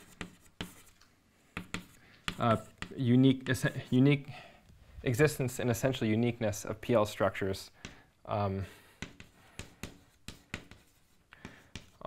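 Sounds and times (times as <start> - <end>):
chalk tapping and scraping on blackboard: 0.0 - 4.2, 7.8 - 8.0, 8.8 - 12.0.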